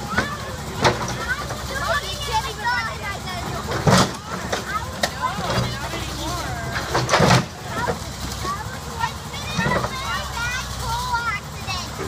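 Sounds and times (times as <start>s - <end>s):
backhoe engine running: 0.0s - 12.0s.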